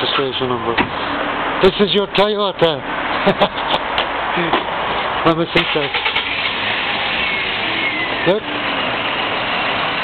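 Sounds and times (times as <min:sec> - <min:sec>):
small car engine idling: 0:05.6 - 0:10.0.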